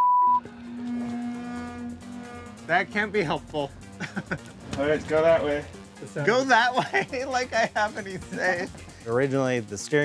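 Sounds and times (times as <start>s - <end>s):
censor bleep tone: 0.0s - 0.5s
background music low note: 0.0s - 7.8s.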